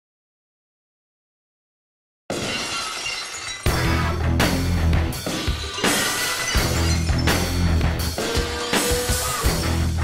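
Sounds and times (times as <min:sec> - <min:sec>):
glass shattering: 0:02.3 - 0:04.2, 0:05.2 - 0:08.8
heavy rock music: 0:03.7 - 0:10.0.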